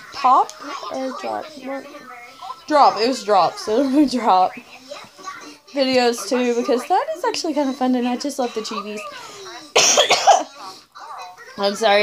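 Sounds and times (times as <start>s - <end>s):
woman coughing: 9.7s - 10.6s.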